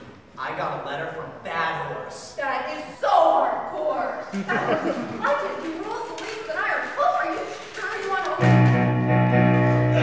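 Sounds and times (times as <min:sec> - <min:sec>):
actors speaking on stage: 0:00.4 - 0:08.7.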